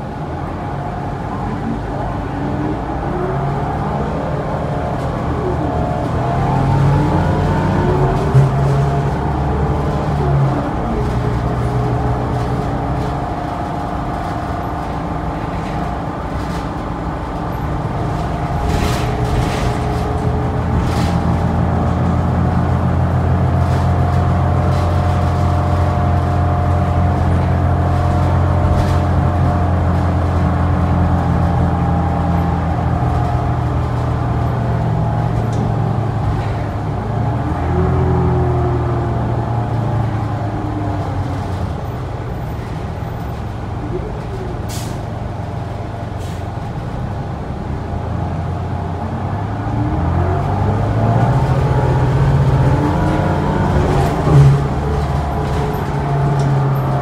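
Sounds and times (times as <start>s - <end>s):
bus diesel engine driving: 0.0s - 57.0s.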